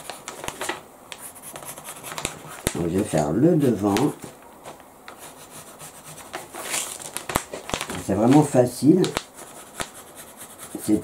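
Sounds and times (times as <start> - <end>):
paper rustling: 0.0 - 5.3, 6.1 - 10.0
pencil scratching on paper: 1.2 - 2.8, 5.2 - 6.6, 9.4 - 11.0.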